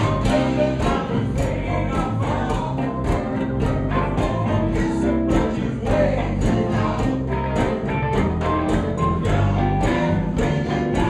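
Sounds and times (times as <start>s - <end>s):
live blues rock band: 0.0s - 11.0s.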